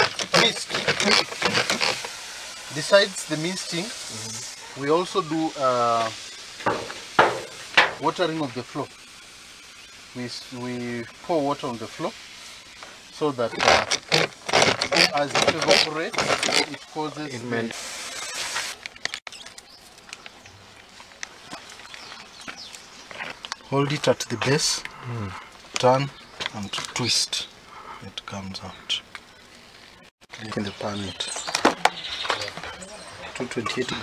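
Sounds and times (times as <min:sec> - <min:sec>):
water mist hissing from sprayer: 0:00.0 - 0:18.8.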